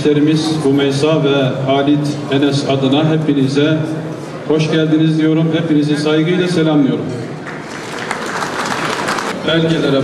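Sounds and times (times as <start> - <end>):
crowd applauding: 7.4 - 9.4.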